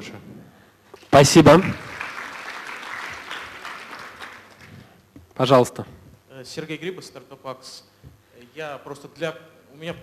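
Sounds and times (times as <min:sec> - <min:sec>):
audience applauding: 0:01.2 - 0:04.9.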